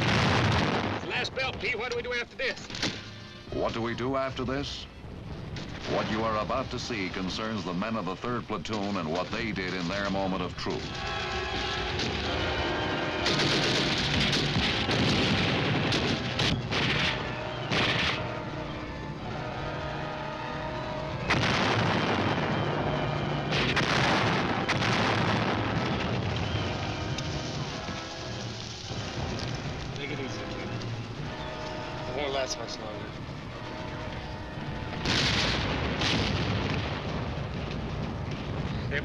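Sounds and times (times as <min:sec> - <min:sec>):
heavy shell explosions: 0:00.0 - 0:02.0, 0:05.2 - 0:32.1, 0:33.1 - 0:39.0
rifle and automatic gunfire: 0:13.2 - 0:18.4.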